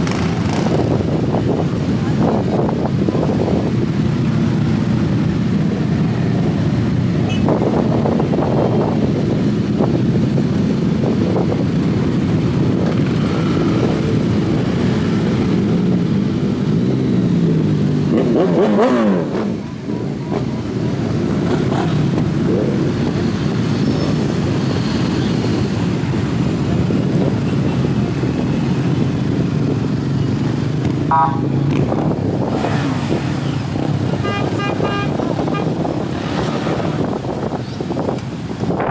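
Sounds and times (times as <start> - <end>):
motorcycle engine revving: 0.0 - 8.3, 12.4 - 37.6
motorcycle engines rumbling: 0.0 - 38.9
horns tooting: 31.1 - 31.8, 34.1 - 36.0.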